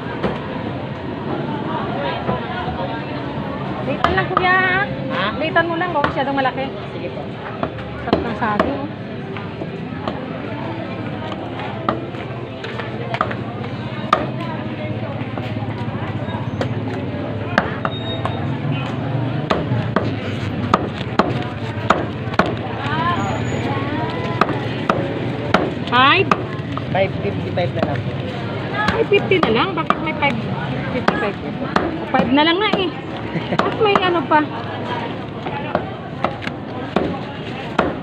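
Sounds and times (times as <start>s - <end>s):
voices: 0.0s - 38.0s
cleaver chopping on a block: 20.7s - 22.6s.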